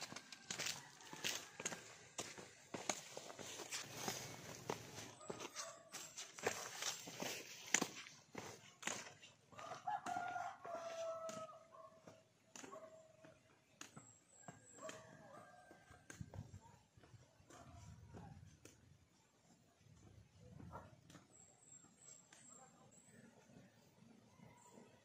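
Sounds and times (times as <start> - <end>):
rooster crowing: 0.0 - 2.3, 9.6 - 11.7
footsteps on dirt trail: 0.0 - 22.5.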